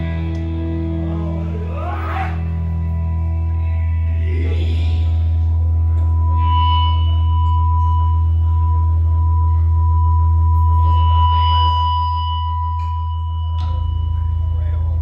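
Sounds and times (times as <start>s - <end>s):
deep amplifier hum: 0.0s - 15.0s
steady high tone: 0.0s - 15.0s.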